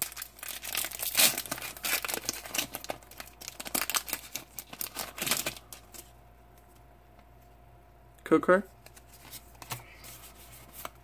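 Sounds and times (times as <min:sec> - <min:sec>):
foil wrapper crinkling and tearing: 0:00.0 - 0:06.1.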